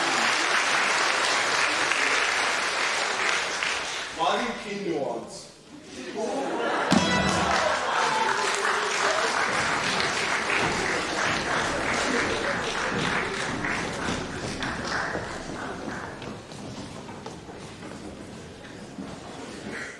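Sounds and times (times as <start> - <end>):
audience applauding: 0.0 - 4.3, 6.6 - 17.7.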